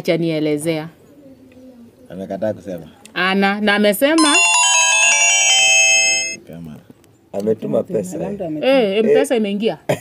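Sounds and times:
phone message alert chime: 4.2 - 6.4.

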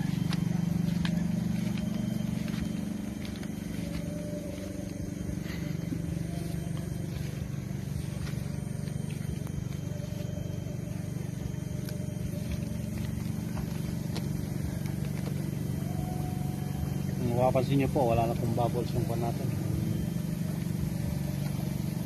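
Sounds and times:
motor drone: 0.0 - 22.0.

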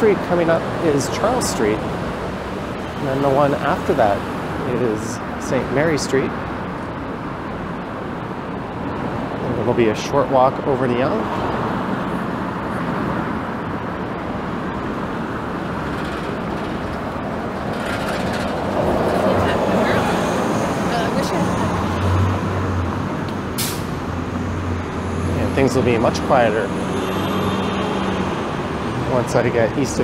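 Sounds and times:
bus engine humming: 0.0 - 30.0
cars and buses passing: 0.0 - 30.0
short sharp hiss: 23.6 - 24.0.

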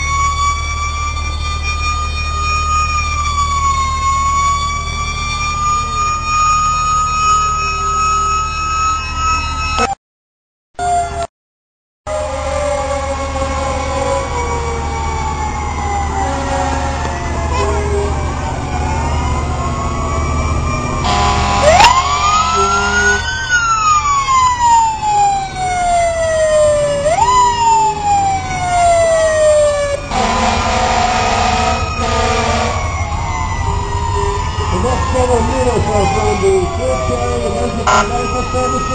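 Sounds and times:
emergency vehicle sirens wailing: 0.0 - 10.0, 10.8 - 11.3, 12.1 - 38.9
engine rumble: 12.1 - 38.9
horn blasts: 16.1 - 18.1, 21.0 - 23.3, 30.1 - 33.0, 37.8 - 38.4.

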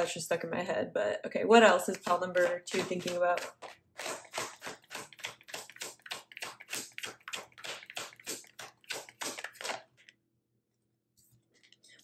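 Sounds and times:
cards being shuffled: 2.0 - 10.2.

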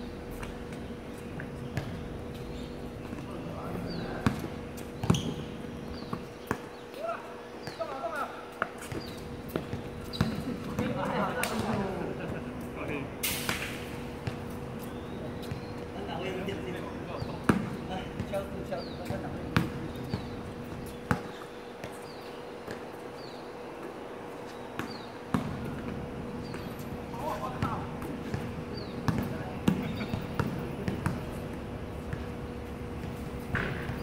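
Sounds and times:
players' voices: 2.6 - 21.4, 24.9 - 34.0
basketball bouncing: 4.2 - 6.8, 8.8 - 11.0, 17.2 - 18.4, 24.8 - 26.8, 27.4 - 32.4, 33.0 - 34.0.

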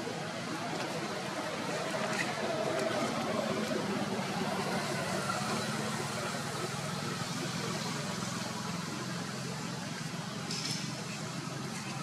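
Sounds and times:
engine humming: 0.0 - 12.0.

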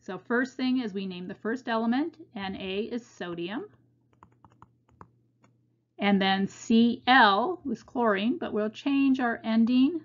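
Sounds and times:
stylus tapping on tablet screen: 3.7 - 5.6.

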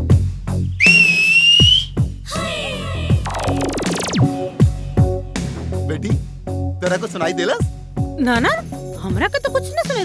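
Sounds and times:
long high whistle: 0.8 - 2.0
electronic music with bass drum: 3.1 - 5.3.

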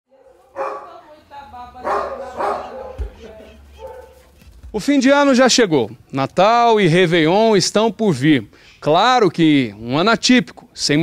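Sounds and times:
dog barking: 0.1 - 1.0, 1.8 - 3.2, 3.8 - 4.4.

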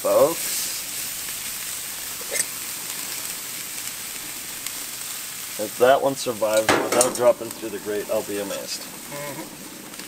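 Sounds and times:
fish sizzling on a grill: 0.0 - 10.0.

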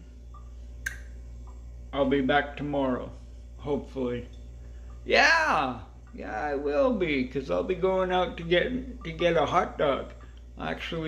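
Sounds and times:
steady low hum: 0.0 - 11.0
sharp click: 0.8 - 1.1.

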